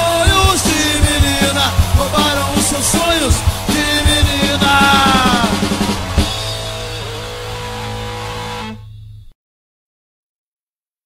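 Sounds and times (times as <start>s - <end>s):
distorted electric guitar chord ringing: 0.0s - 9.3s.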